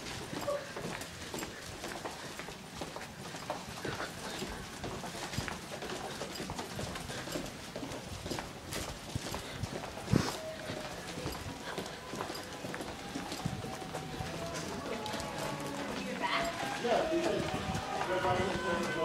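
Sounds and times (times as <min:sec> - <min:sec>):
footsteps on hard floor: 0:00.0 - 0:19.0.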